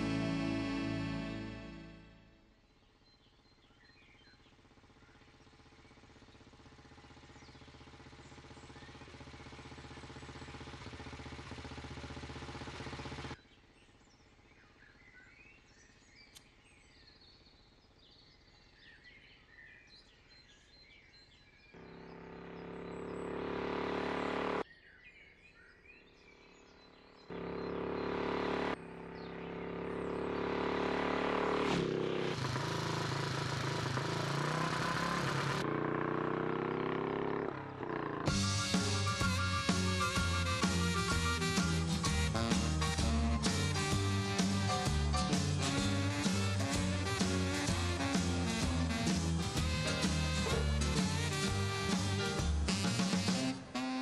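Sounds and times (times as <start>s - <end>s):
motorcycle engine running: 0.0s - 2.8s, 3.4s - 15.0s, 21.8s - 24.6s, 27.2s - 54.0s
birds chirping: 0.0s - 35.7s, 36.6s - 54.0s.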